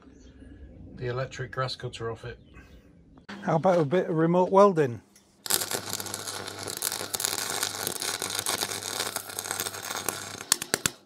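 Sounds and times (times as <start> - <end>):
low steady hum: 0.0 - 4.0
welding arc crackling: 5.4 - 11.0.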